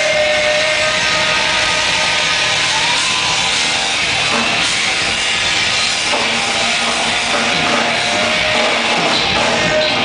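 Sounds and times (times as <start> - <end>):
bass guitar: 0.0 - 10.0
distorted electric guitar: 0.0 - 10.0
drums and cymbals: 0.0 - 10.0.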